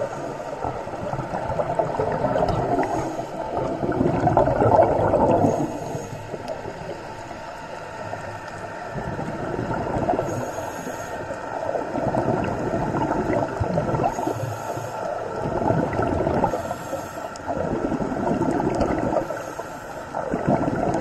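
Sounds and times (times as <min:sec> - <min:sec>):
regulator bubbles gurgling underwater: 0:00.0 - 0:21.0.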